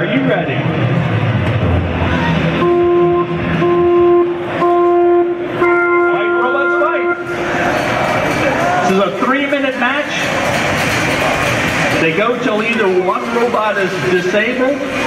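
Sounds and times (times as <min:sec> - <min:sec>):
crowd chatter: 0:00.0 - 0:15.0
electronic countdown beeps: 0:02.6 - 0:07.3.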